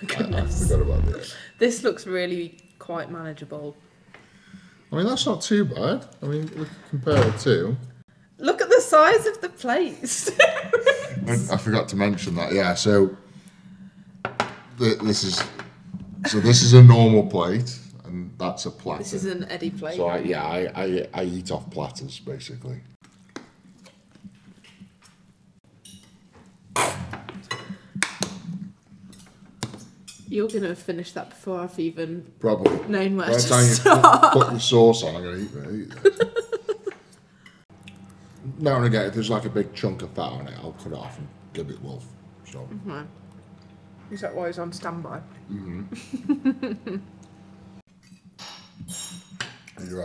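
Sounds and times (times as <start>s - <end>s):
cutlery clinking on plates: 25.8s - 26.3s, 48.0s - 49.8s.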